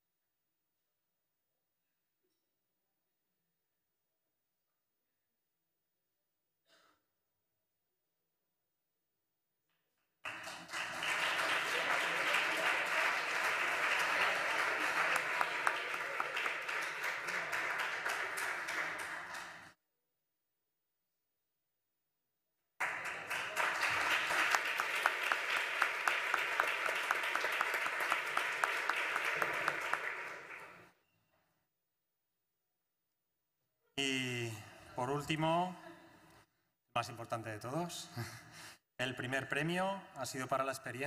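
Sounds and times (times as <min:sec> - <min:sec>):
audience applauding: 0:10.2 - 0:19.8, 0:22.8 - 0:31.0.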